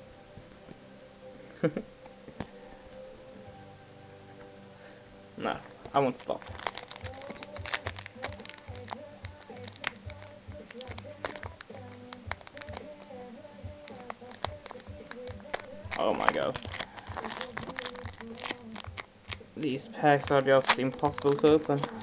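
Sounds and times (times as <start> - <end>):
quiet background music: 0.0 - 22.0
foil wrapper crinkling: 5.8 - 13.2, 13.8 - 22.0
foil wrapper tearing: 6.1 - 13.2, 13.8 - 22.0.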